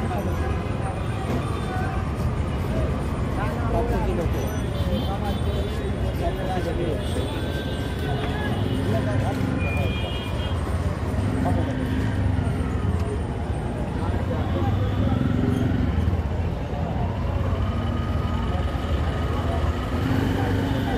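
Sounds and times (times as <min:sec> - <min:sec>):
people talking: 0:00.0 - 0:20.9
traffic engines rumbling: 0:00.0 - 0:20.9.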